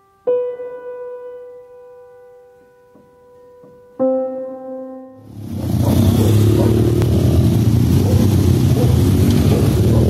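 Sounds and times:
piano jingle: 0.0s - 5.3s.

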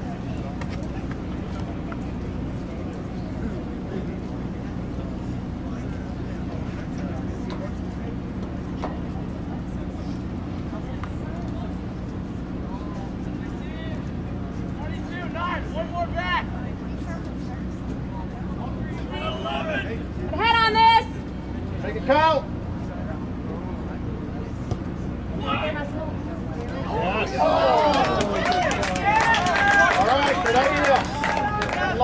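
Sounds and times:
low hum and rumble: 0.0s - 32.0s
voices shouting calls: 19.0s - 21.3s.

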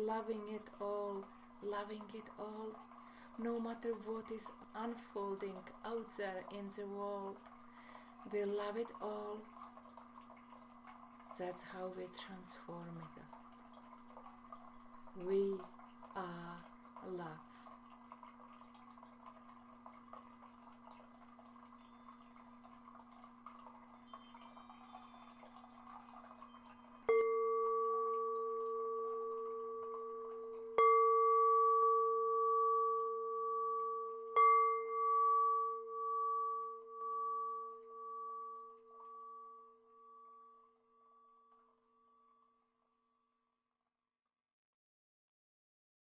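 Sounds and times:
singing bowl ringing: 23.5s - 42.8s.

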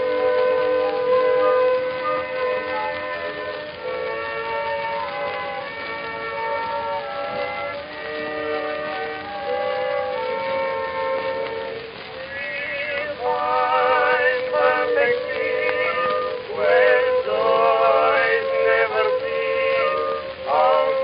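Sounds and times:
old orchestra recording: 0.0s - 21.0s.

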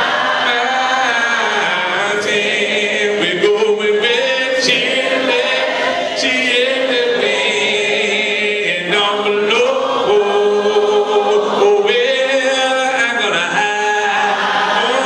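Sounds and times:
a cappella gospel singing: 0.0s - 15.0s.

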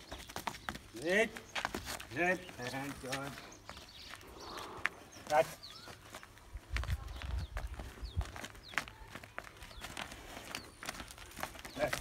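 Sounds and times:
hooves on dry dirt: 0.0s - 12.0s
small bird chirping: 0.0s - 12.0s.

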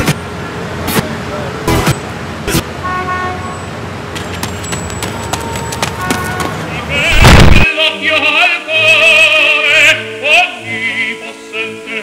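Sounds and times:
traffic noise: 0.0s - 12.0s
car horn toot: 2.8s - 3.6s, 5.3s - 7.3s.

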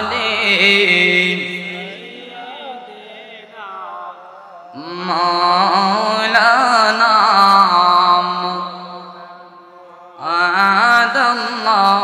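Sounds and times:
man chanting over pa system: 0.0s - 12.0s.

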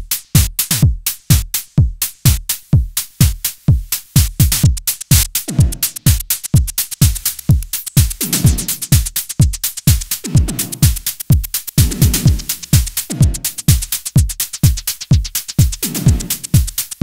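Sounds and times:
hi-hat ticks: 0.0s - 17.0s
kick drum with pitch sweep: 0.0s - 17.0s
tom drum: 0.0s - 17.0s.

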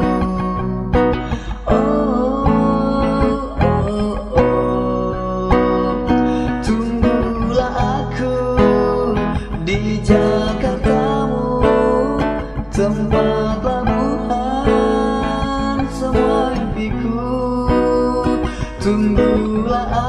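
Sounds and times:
pop song guitar break: 0.0s - 20.0s.

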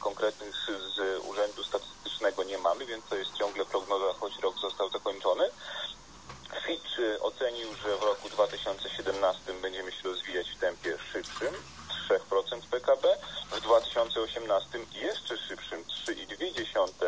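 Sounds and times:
broadcast speech through loudspeaker: 0.0s - 17.0s
faint high whine: 0.0s - 17.0s.

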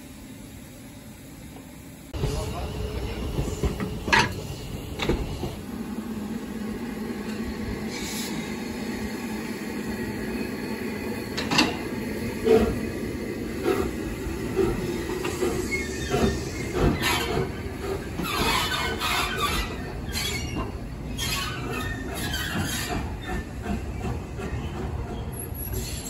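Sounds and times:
steam locomotive rumbling: 0.0s - 26.0s.

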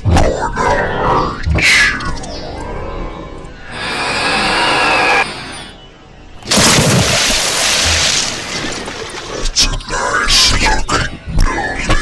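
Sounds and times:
rough rasping blast: 6.4s - 9.6s.

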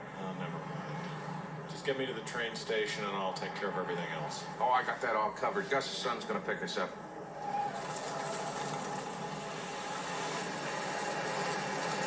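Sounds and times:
cars and trucks driving past: 7.3s - 12.0s.

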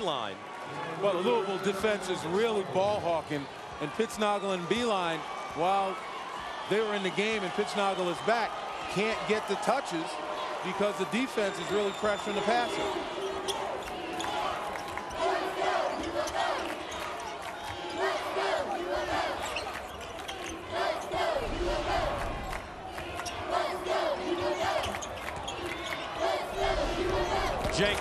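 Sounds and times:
crowd shouts: 0.0s - 28.0s
crowd din: 20.6s - 28.0s.

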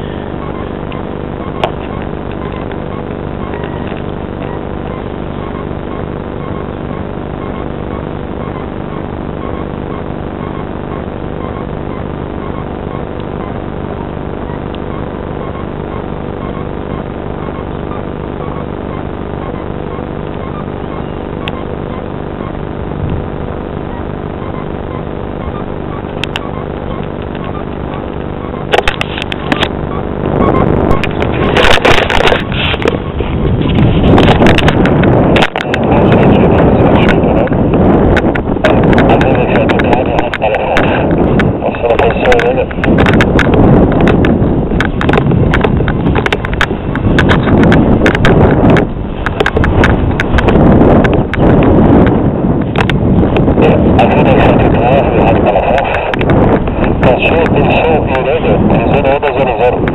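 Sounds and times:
rumbling and sharp knocks: 0.0s - 58.0s
engine drone: 0.0s - 59.9s.

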